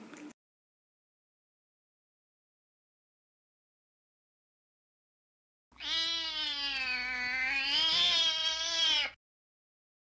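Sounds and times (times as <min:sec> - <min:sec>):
cat yowling: 0:05.8 - 0:09.2.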